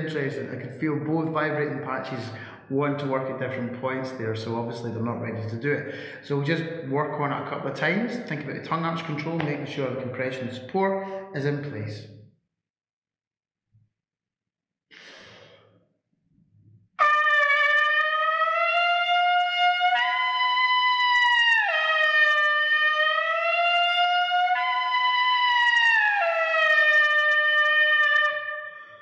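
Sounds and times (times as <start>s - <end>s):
breath: 2.3s - 2.7s, 5.9s - 6.2s, 11.0s - 11.3s, 14.9s - 15.9s
trumpet leadpipe buzz tone: 17.0s - 29.0s.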